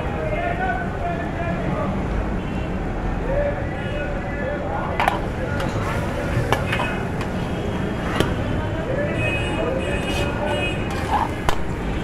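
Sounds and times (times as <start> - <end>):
traffic: 0.0 - 12.0.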